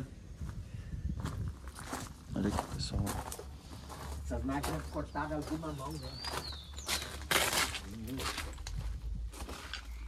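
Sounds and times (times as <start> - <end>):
footsteps on gravel: 0.4 - 10.0.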